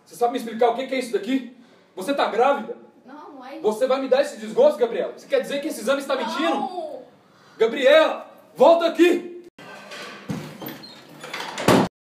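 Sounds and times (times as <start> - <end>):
door slamming shut: 11.3 - 11.9.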